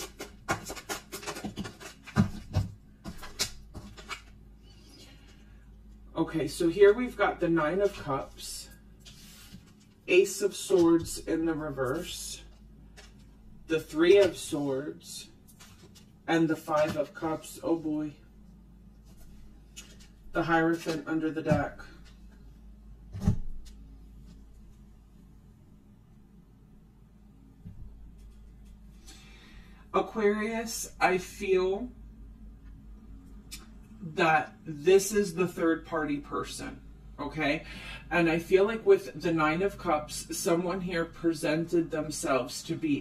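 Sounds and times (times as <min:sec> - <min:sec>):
cards rubbing and sliding: 0:00.0 - 0:05.1
cards being shuffled: 0:00.0 - 0:05.4, 0:15.5 - 0:17.5, 0:19.0 - 0:22.4
low steady hum: 0:00.0 - 0:43.0.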